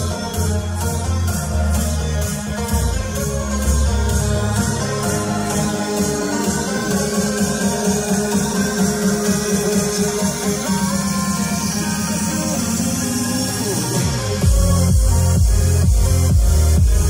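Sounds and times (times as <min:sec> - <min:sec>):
electronic music in a car: 0:00.0 - 0:17.0.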